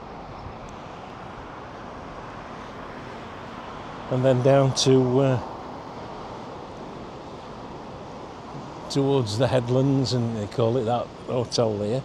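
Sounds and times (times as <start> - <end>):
road traffic: 0.0 - 12.0.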